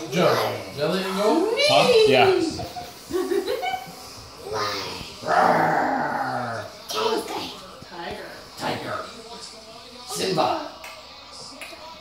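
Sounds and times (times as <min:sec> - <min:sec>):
person imitating big cat roar: 0:05.2 - 0:06.7.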